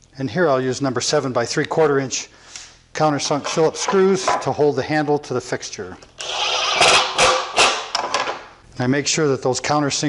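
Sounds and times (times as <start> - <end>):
impact driver driving screw into wood: 6.2 - 8.4.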